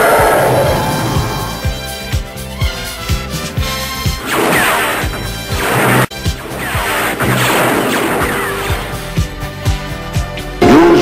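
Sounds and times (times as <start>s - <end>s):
music with bass drum beat: 1.1s - 4.3s, 8.8s - 11.0s
space battle blasts: 4.2s - 9.2s, 10.6s - 11.0s.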